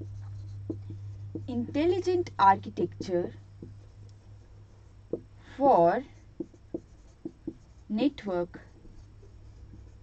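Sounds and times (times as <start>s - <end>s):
faint low hum: 0.0s - 10.0s
marker squeaking on whiteboard: 6.4s - 7.9s.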